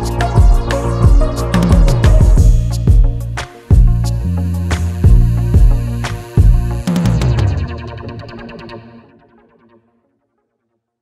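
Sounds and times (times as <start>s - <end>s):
distorted electric guitar music: 0.0s - 9.0s.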